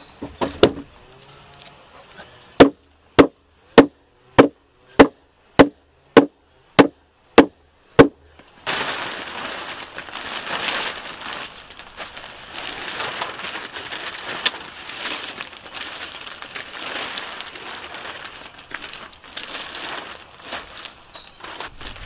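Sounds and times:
plastic sheeting rustling: 8.4 - 22.0.

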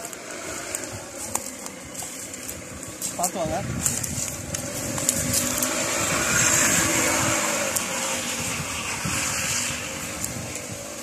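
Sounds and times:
footsteps through dry leaves: 0.0 - 11.0
wind on microphone: 0.0 - 11.0.

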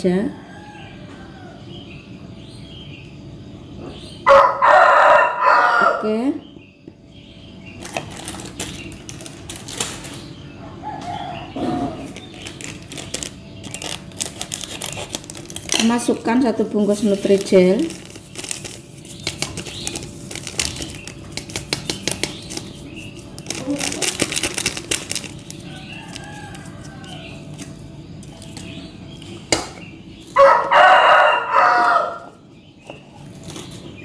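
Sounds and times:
rooster crowing: 4.2 - 6.2, 10.6 - 12.2, 25.6 - 27.7, 30.4 - 32.4
plastic sachet crinkling: 7.8 - 10.2, 12.1 - 28.8.

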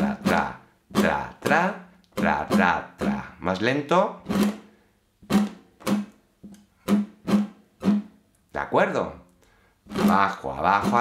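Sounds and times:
acoustic guitar strummed: 0.0 - 3.3, 4.2 - 6.2, 6.8 - 8.2, 9.9 - 11.0.

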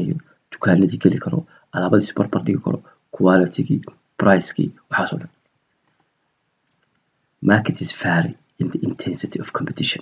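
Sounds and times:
man speaking: 0.0 - 5.4, 7.4 - 10.0
faint mouse clicks: 5.3 - 7.1.

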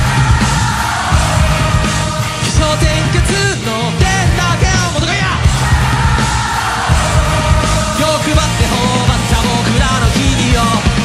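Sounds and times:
electric guitar: 0.0 - 11.0
man singing and yelling: 0.0 - 11.0
pounding drums: 0.0 - 11.0.

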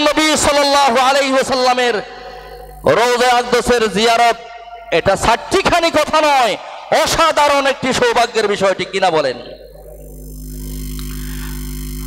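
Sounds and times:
electrical mains hum and buzz: 0.0 - 12.0.

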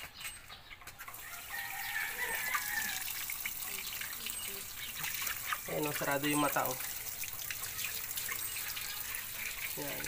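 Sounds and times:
tap water running: 0.9 - 10.0.

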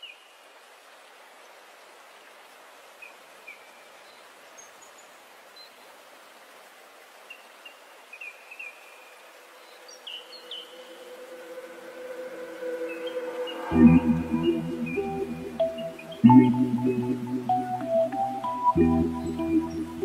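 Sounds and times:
faint steady hiss: 0.0 - 20.0
low steady tone: 10.9 - 20.0
bird chirps: 12.8 - 20.0.

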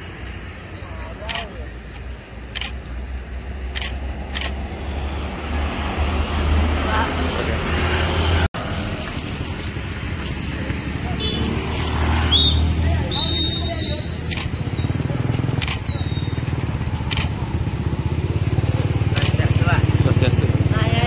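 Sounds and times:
small motorbikes passing: 4.5 - 21.0.

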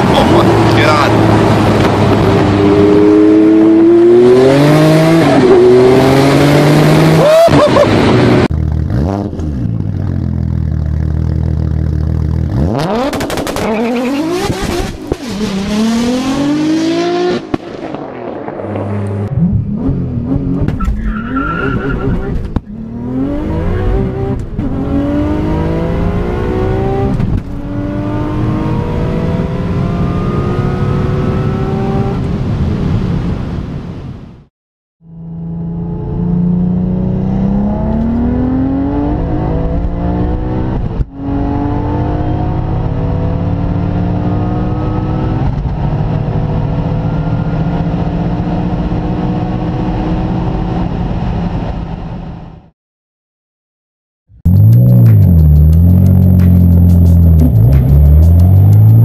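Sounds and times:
car engine accelerating hard: 0.0 - 32.4, 35.4 - 51.6, 54.5 - 59.0.

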